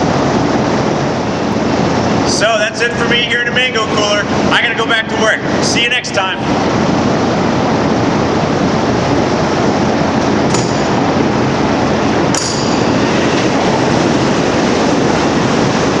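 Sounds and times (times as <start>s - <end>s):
loud rushing noise: 3.9s - 16.0s
sharp metallic clanks: 10.5s - 11.2s, 12.3s - 13.5s.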